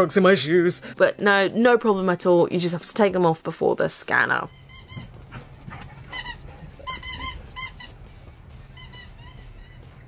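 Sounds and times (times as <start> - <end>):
squeaky toy squeaks: 4.5 - 10.0.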